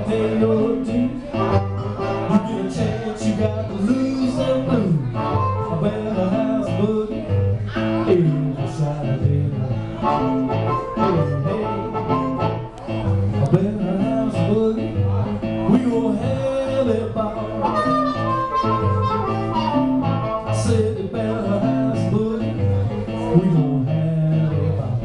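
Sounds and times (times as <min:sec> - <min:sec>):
blues harmonica bending notes: 0:00.0 - 0:15.1, 0:16.2 - 0:24.6
guitar boogie rhythm: 0:00.0 - 0:25.0.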